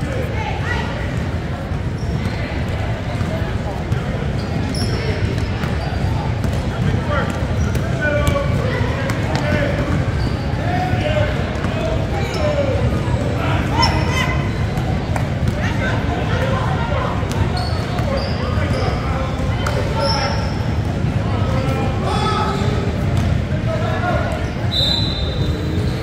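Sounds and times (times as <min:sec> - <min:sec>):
echoing din of players and spectators: 0:00.0 - 0:26.0.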